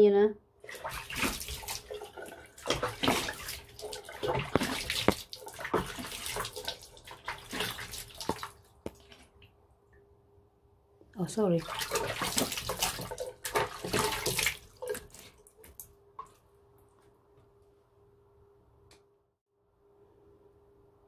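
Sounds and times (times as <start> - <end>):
water splashing on face: 0.6 - 9.5, 11.6 - 15.9
water running from sink tap: 0.7 - 8.5.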